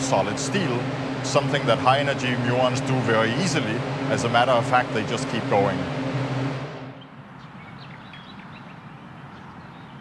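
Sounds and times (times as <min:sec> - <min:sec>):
low equipment hum: 0:00.0 - 0:07.4
quiet outdoor background: 0:00.0 - 0:10.0.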